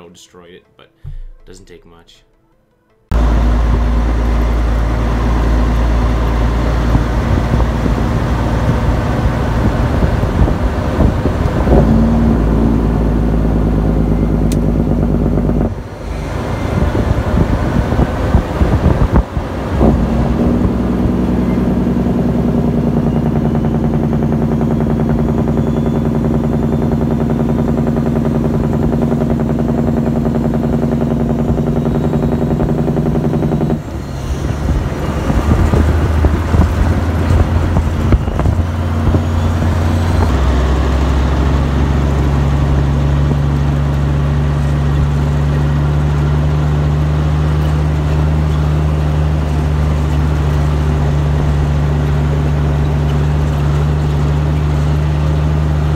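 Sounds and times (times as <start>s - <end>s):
truck diesel engine running: 3.1s - 55.9s.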